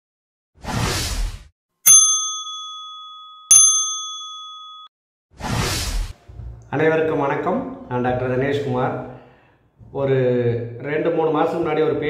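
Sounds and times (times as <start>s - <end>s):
bell-like chime dings: 1.9s - 4.9s.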